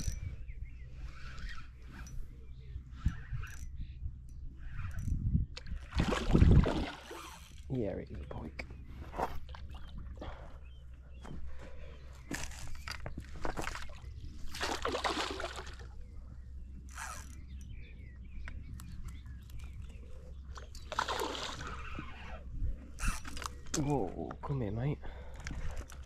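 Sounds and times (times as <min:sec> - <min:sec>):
fish splashing in water: 0:13.4 - 0:16.0, 0:20.9 - 0:21.9.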